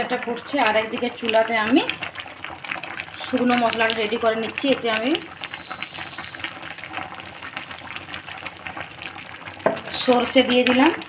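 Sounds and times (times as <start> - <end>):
seeds sizzling in hot oil: 0.0 - 11.0.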